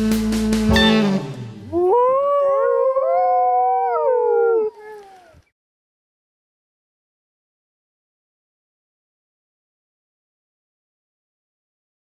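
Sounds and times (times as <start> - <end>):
saxophone music: 0.0 - 1.8
dogs howling: 1.7 - 5.4.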